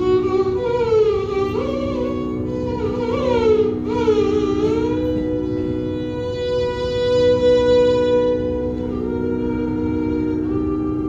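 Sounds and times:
steady drone: 0.0 - 11.0
violin sliding and held notes: 0.0 - 11.0.

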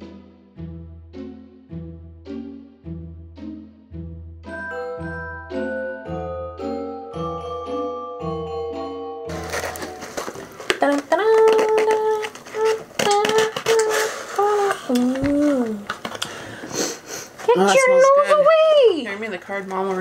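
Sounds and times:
chiming music jingle: 4.4 - 9.3
cardboard box flaps crinkling: 9.3 - 14.3
woman's wordless singing: 10.7 - 15.9.

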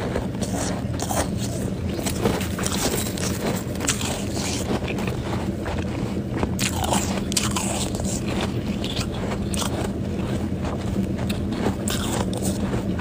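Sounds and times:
frost being chewed crunching: 0.0 - 13.0
steady low hum: 0.0 - 13.0.

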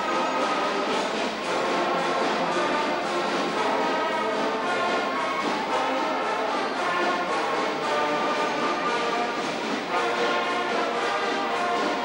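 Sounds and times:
brass and reed band playing polka: 0.0 - 12.0.

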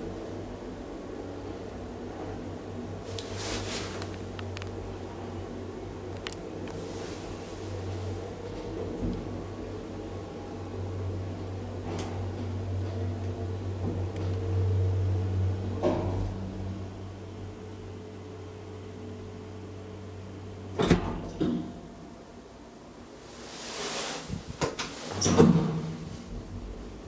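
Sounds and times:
elevator car clunks: 24.6 - 26.1.

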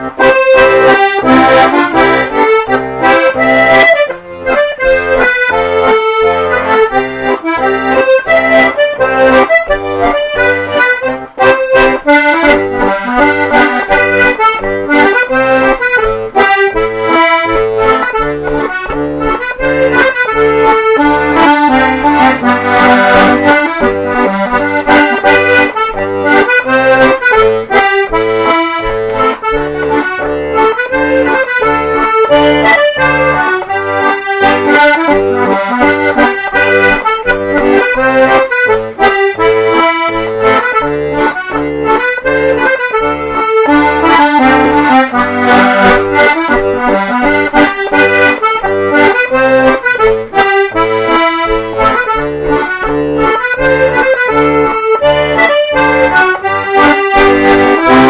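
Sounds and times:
button accordion playing dance tune: 0.0 - 58.0.

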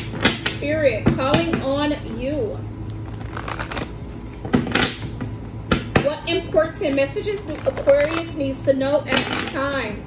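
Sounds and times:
cards snapping: 2.9 - 4.0
cards being shuffled: 2.9 - 4.4, 7.5 - 8.3.

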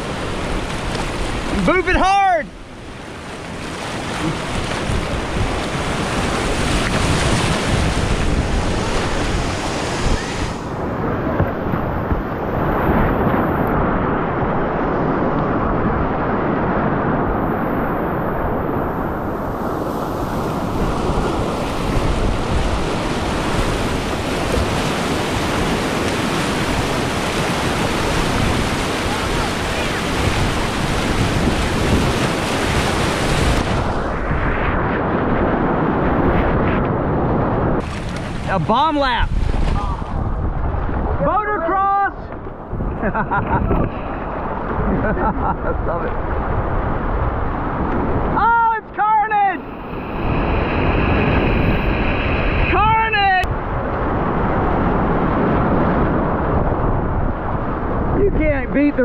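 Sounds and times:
whitewater rushing and splashing: 0.0 - 36.6, 37.6 - 59.0.

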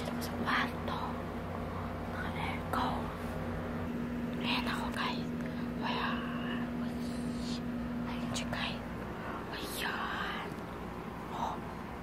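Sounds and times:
woman whispering: 0.0 - 1.3, 2.1 - 3.3, 4.3 - 10.6, 11.2 - 11.8
steady low hum: 0.0 - 12.0.

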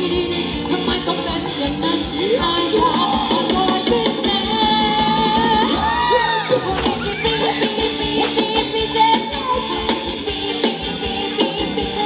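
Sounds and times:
live band dance music: 0.0 - 12.0.

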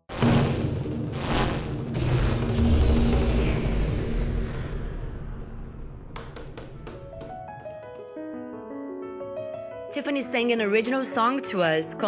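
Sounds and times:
deep booming rumble: 0.1 - 7.6
heavy percussive hits: 0.1 - 7.8.

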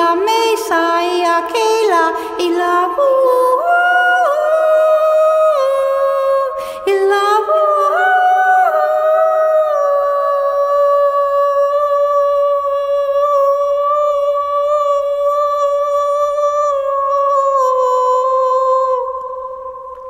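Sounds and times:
woman singing long wordless note: 0.0 - 20.0.

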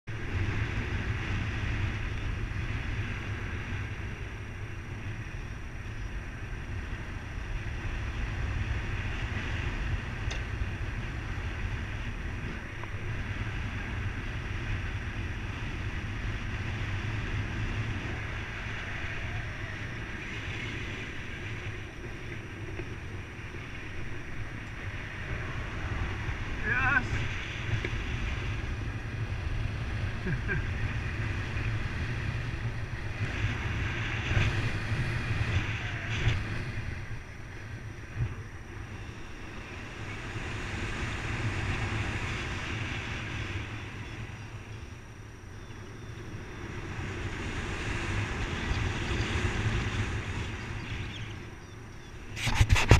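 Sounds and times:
wind buffeting microphone: 0.0 - 52.9.

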